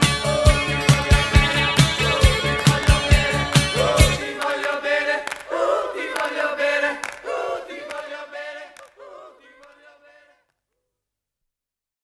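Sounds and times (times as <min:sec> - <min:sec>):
drums and bass: 0:00.0 - 0:04.2
voices singing together: 0:00.0 - 0:10.5.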